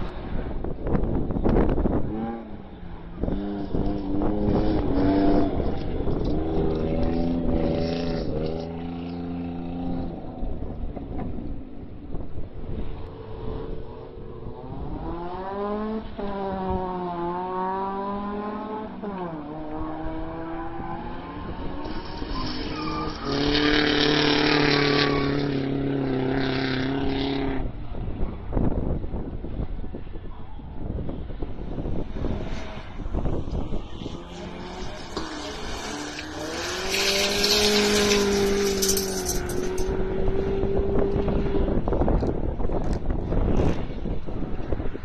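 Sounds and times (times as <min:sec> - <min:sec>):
race car engines revving: 0:00.0 - 0:45.0
tyres on gravel: 0:33.8 - 0:40.2.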